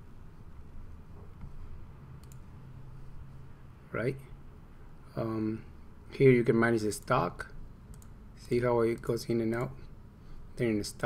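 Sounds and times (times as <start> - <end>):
faint low hum: 0.0 - 11.0
computer mouse click: 2.2 - 2.5, 7.9 - 8.2.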